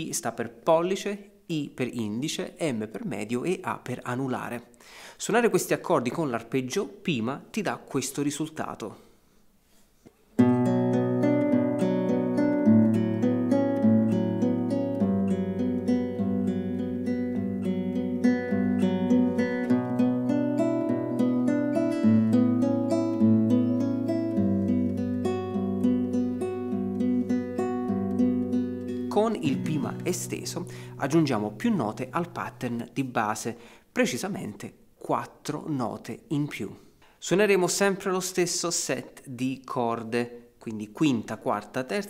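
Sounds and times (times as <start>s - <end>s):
fingerpicked classical guitar: 10.4s - 33.5s.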